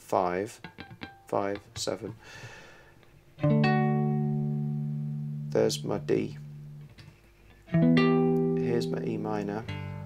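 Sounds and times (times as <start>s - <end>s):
guitar chord ringing out: 0.6s - 1.4s, 3.4s - 7.0s, 7.6s - 10.0s.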